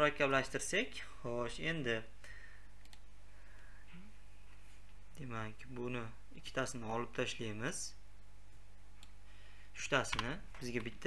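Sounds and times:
low electrical hum: 0.0 - 11.0
computer mouse clicks: 2.8 - 3.1.

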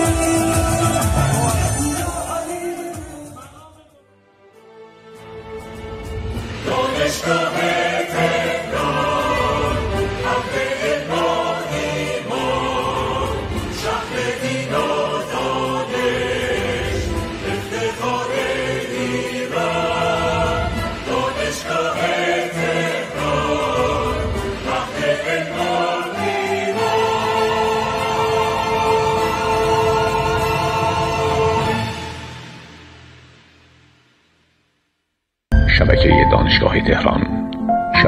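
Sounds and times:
choir singing held phrases: 6.4 - 32.7.

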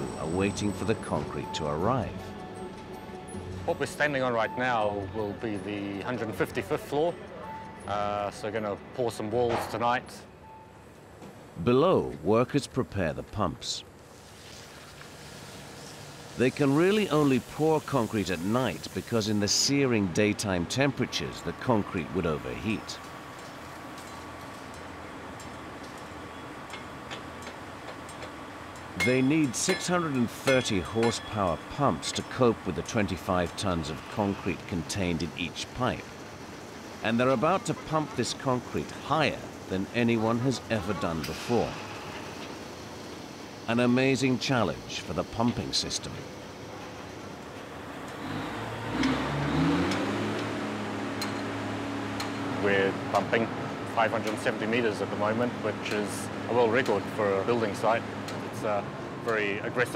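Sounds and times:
machinery humming: 0.0 - 14.0, 15.2 - 59.9
metallic clicks of pipe couplings: 26.7 - 31.6
concrete pump engine revving: 47.8 - 57.8.

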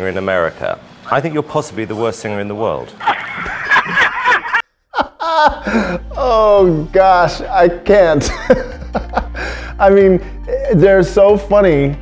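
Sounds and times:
people laughing: 3.0 - 6.3, 8.2 - 9.7.

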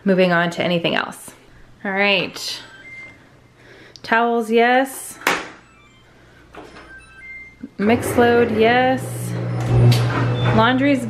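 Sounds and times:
faint electronic beeps: 2.5 - 3.6, 5.6 - 8.1.

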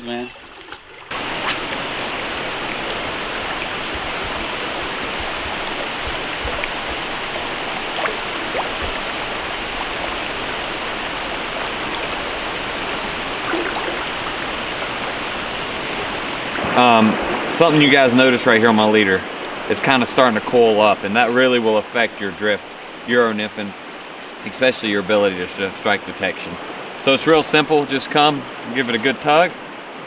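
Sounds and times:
stream water rushing: 0.0 - 30.0.

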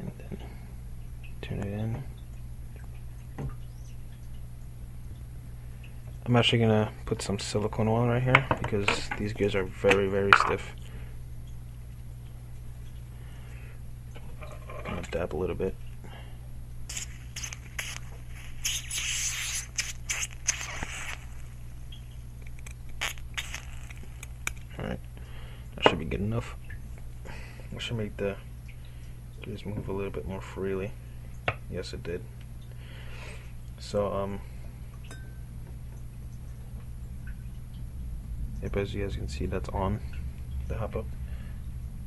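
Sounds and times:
steady low hum: 0.0 - 42.0
aerosol can spraying: 16.9 - 21.6, 23.0 - 24.6.

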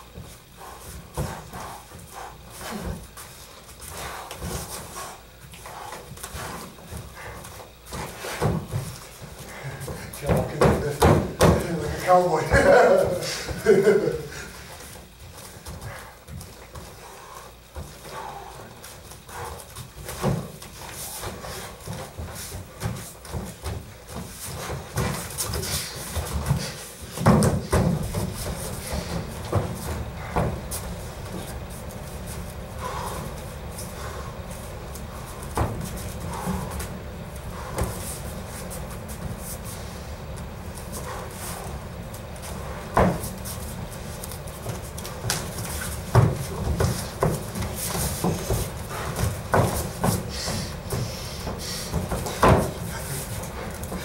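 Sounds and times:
bare feet shuffling on mats: 0.0 - 54.0
heavy breathing and panting: 0.0 - 54.0
thuds of footfalls and blows: 6.9 - 12.0, 21.2 - 31.4, 44.6 - 54.0.

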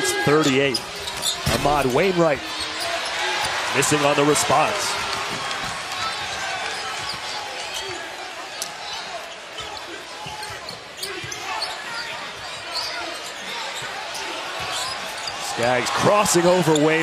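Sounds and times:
sneaker squeaks: 0.3 - 3.6, 6.1 - 15.6.

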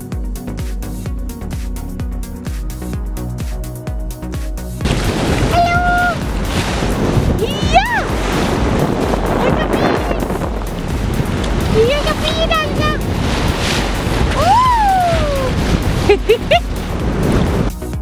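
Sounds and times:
water and wind rushing: 0.0 - 18.0
excited voices squealing: 14.3 - 15.5.

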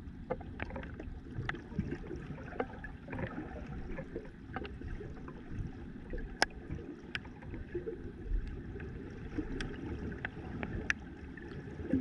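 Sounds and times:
faint clicks and crackles: 0.0 - 12.0
underwater rumble of moving water: 0.0 - 12.0.

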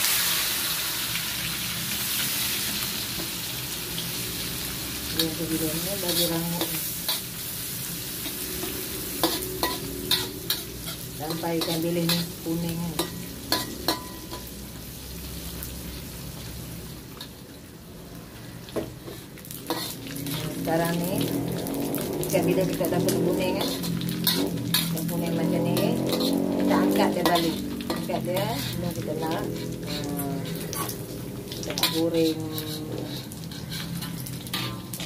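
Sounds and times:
fish sizzling in hot oil: 0.0 - 35.0
metal spatula scraping wok: 5.1 - 14.6, 19.0 - 35.0
metal spatula knocking wok: 8.6 - 14.5.

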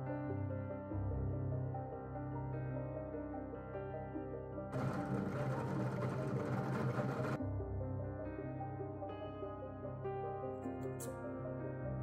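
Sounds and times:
soft background music: 0.0 - 12.0
drill press drilling into wood: 4.8 - 7.4.

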